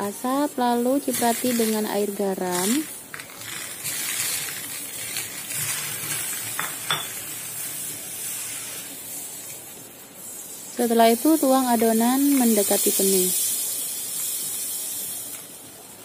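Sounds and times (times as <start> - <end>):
water sizzling on hot metal: 0.0 - 16.0.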